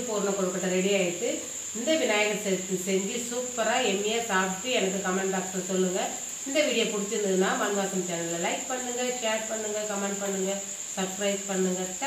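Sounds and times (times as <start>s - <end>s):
steady high-pitched whine: 0.0s - 12.0s
woman speaking: 0.0s - 12.0s.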